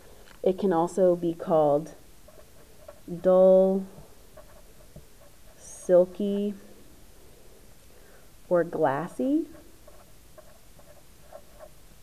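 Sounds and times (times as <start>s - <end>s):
marker squeaking on paper: 2.3s - 5.7s, 9.3s - 11.8s.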